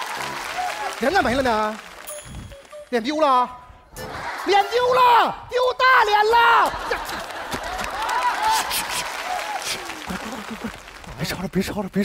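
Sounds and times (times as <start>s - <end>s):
studio audience applauding: 0.0s - 3.2s, 6.6s - 11.6s
man talking: 0.8s - 1.9s, 11.1s - 12.0s.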